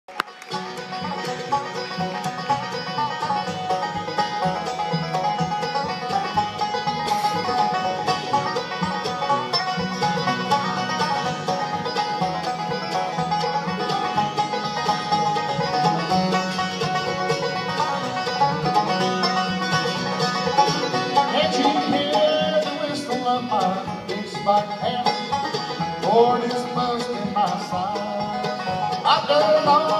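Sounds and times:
bluegrass band playing: 0:00.1 - 0:29.9.

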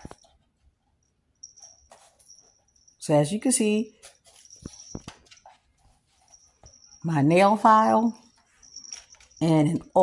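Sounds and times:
kittens scuffling and rustling: 0:00.0 - 0:10.0.

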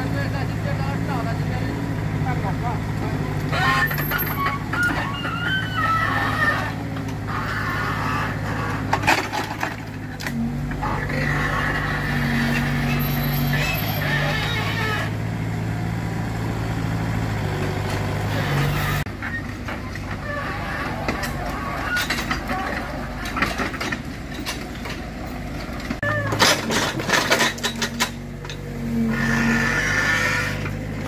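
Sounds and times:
diesel engine running: 0:00.0 - 0:31.0.

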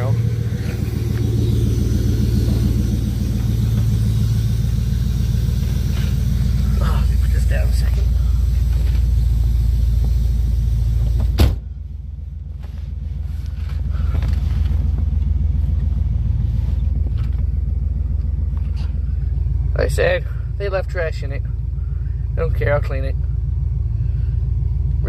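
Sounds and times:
car engine idling: 0:00.0 - 0:25.0.

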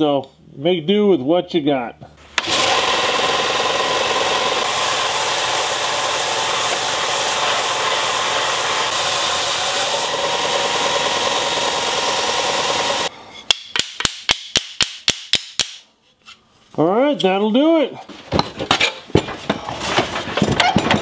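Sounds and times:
belt sander grinding wood: 0:02.4 - 0:13.1.

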